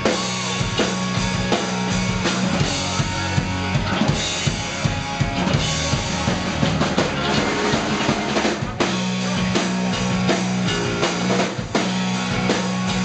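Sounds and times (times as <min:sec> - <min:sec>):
rock band playing: 0:00.0 - 0:13.0
steady low bass note: 0:00.0 - 0:13.0.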